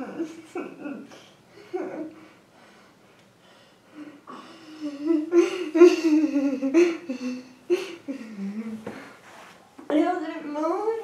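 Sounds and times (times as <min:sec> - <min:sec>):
woman whimpering and humming: 0:04.3 - 0:08.9.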